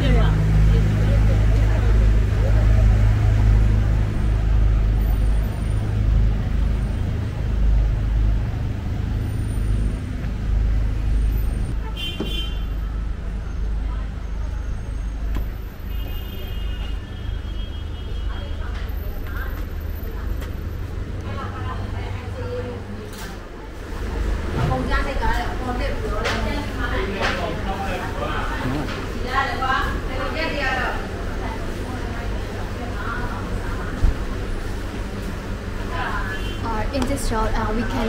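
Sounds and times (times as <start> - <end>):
passers-by talking: 0.0 - 10.2, 18.1 - 38.0
heavy traffic engine rumble: 0.0 - 38.0
vehicle horn toot: 11.7 - 13.1, 15.8 - 18.6, 36.2 - 36.7.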